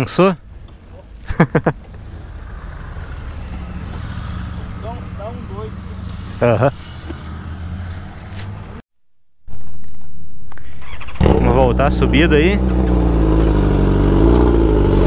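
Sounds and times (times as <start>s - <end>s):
motorcycle engine idling: 11.2s - 15.0s.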